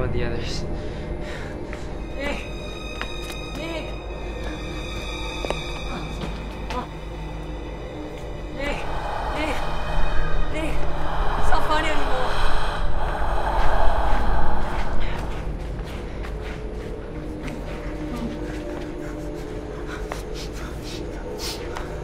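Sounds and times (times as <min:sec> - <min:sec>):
low droning horror score: 0:00.0 - 0:22.0.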